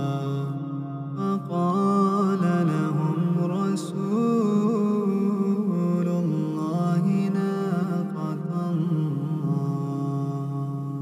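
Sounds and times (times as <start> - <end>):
man reciting melodically: 0.0 - 11.0.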